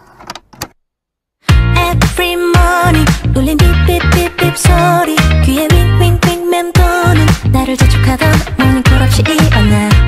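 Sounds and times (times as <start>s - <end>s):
pop song with deep bass: 1.5s - 10.0s.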